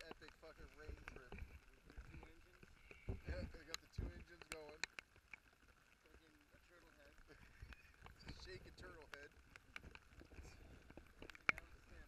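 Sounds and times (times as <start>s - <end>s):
people talking indistinctly: 0.0s - 4.9s, 6.0s - 9.4s.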